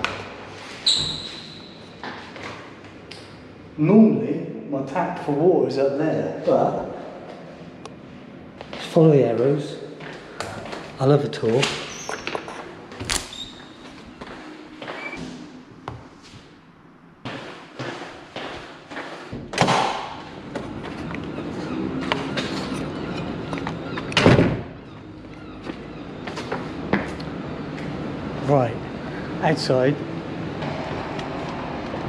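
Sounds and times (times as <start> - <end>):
movement noise: 6.8 - 24.1.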